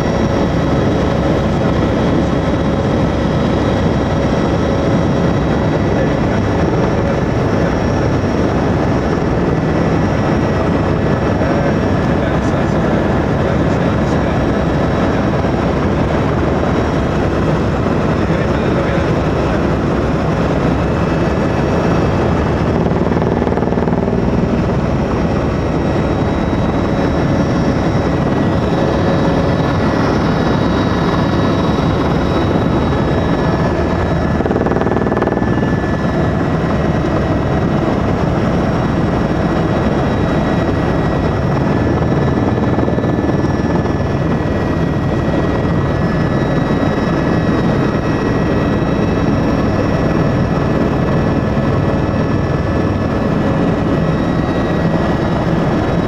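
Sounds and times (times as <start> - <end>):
helicopter engine and rotor drone: 0.0 - 56.0.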